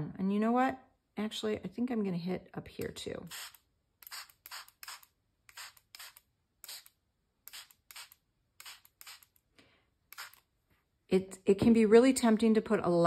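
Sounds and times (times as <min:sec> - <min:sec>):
spray bottle spritzing: 0:03.3 - 0:09.4, 0:10.1 - 0:10.4.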